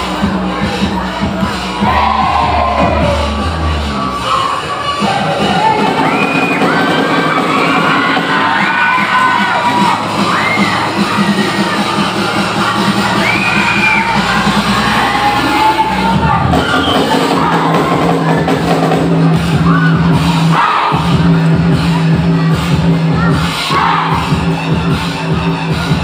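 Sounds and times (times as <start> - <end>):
crowd cheering and shouting: 0.0 - 26.0
loud dance music: 0.0 - 26.0.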